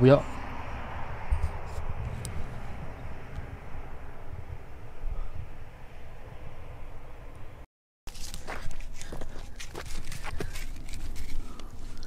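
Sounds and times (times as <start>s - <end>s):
crunching footsteps: 8.1s - 12.0s.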